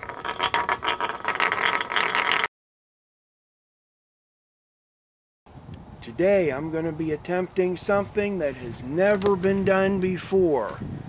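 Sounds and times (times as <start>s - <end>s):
ice disk rattling on ice: 0.0s - 2.5s.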